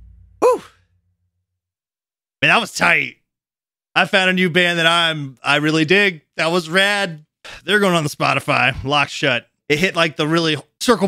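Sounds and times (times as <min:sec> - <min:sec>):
punk song last note: 0:00.0 - 0:00.7
person sighing: 0:00.4 - 0:00.7.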